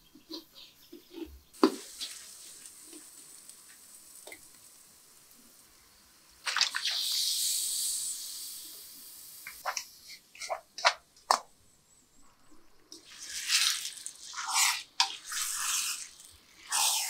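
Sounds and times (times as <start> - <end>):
food sizzling in a wok: 1.6 - 11.0, 13.0 - 17.0
wooden spoon scraping and stirring: 13.0 - 17.0.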